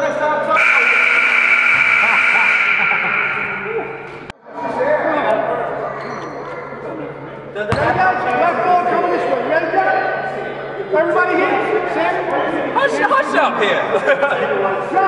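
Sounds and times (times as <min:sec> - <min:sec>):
voices echoing in hall: 0:00.0 - 0:15.0
steady ringing tone: 0:01.0 - 0:04.3.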